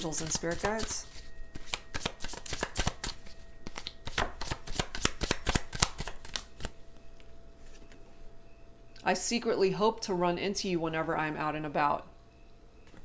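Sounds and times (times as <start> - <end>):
cards being shuffled: 0.0 - 6.8.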